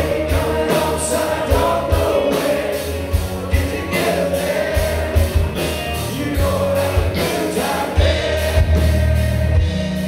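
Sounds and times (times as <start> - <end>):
man singing into a microphone: 0.0 - 5.3, 6.1 - 9.6
rock band playing a ballad: 0.0 - 10.0.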